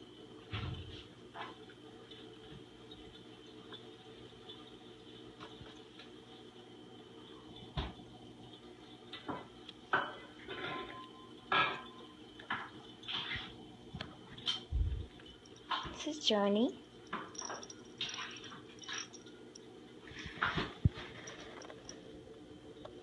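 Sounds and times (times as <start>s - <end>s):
low room hum: 0.0s - 23.0s.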